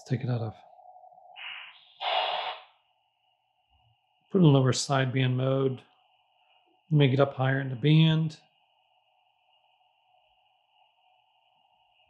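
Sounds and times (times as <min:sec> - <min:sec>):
radio static hiss: 0:01.3 - 0:02.8.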